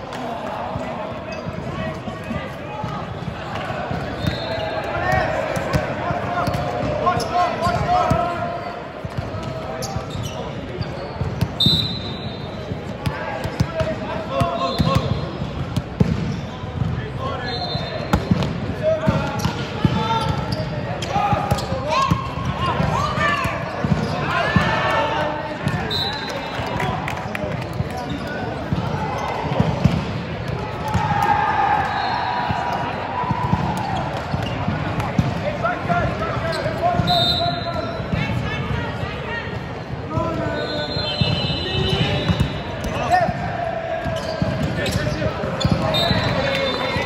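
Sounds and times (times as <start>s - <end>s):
players shouting: 0.1s - 8.8s, 18.8s - 27.0s, 28.0s - 47.0s
shoes squeaking on court floor: 1.2s - 5.8s, 6.4s - 13.6s, 19.4s - 22.9s, 27.7s - 29.7s, 33.5s - 35.4s, 36.0s - 38.2s, 43.9s - 47.0s
volleyball hit and bouncing: 2.8s - 7.1s, 12.9s - 17.0s, 28.6s - 31.9s, 32.5s - 36.0s.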